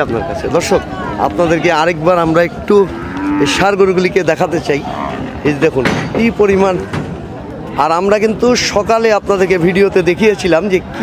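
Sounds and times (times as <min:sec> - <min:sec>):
people talking: 0:00.0 - 0:06.9, 0:07.8 - 0:11.0
cattle mooing: 0:02.8 - 0:05.6.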